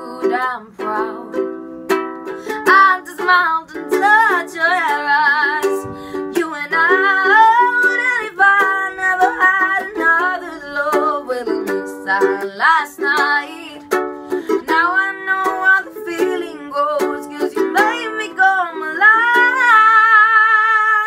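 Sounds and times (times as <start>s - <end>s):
woman singing a slow ballad: 0.0s - 1.4s, 2.7s - 21.0s
strummed ukulele chords: 0.0s - 21.0s.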